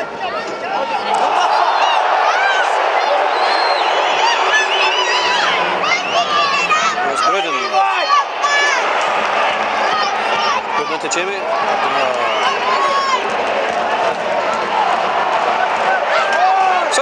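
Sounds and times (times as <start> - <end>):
crowd shouting and chatter: 0.0 - 17.0.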